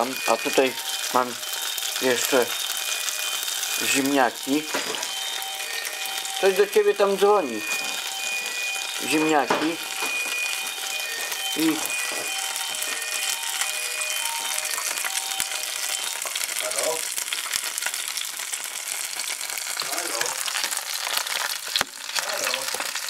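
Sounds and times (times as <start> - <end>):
meat sizzling in a frying pan: 0.0 - 23.0.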